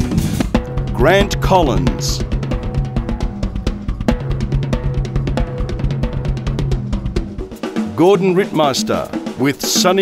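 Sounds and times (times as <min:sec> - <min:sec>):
fast drum kit playing: 0:00.0 - 0:10.0
band playing pitched notes: 0:00.6 - 0:09.8.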